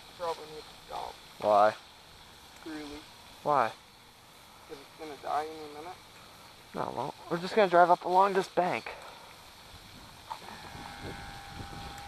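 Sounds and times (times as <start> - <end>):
electric motor whine: 10.4 - 12.0.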